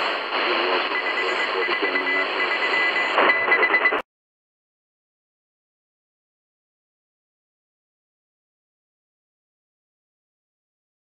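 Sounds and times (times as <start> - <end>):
radio static hiss: 0.0 - 4.0
morse code beeping: 0.9 - 4.0.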